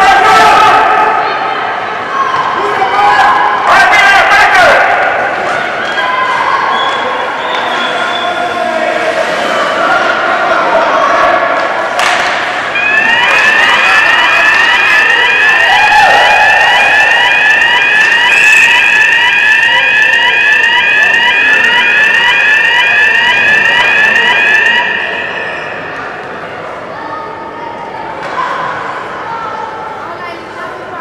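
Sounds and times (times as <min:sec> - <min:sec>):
electronic goal siren whooping: 0:12.7 - 0:26.0.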